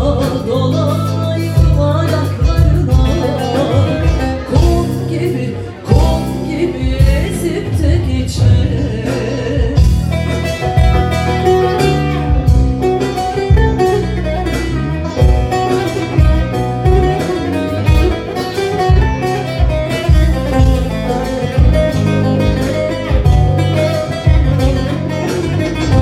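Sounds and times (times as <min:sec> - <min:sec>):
low bass notes: 0:00.0 - 0:26.0
person singing: 0:00.0 - 0:26.0
plucked lute and guitar: 0:00.0 - 0:26.0.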